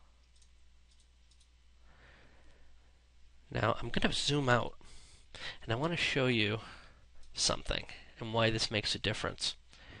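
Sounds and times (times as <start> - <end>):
low steady hum: 0.0 - 10.0
computer mouse clicks: 0.2 - 1.5.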